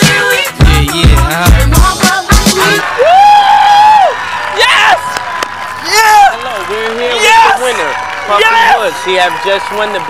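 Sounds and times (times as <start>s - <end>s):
person whooping: 2.9s - 5.1s
person yelling: 3.0s - 5.1s, 7.2s - 7.6s.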